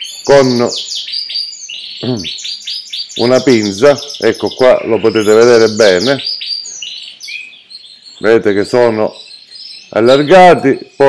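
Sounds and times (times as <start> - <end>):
canaries chirping and trilling: 0.0 - 11.0.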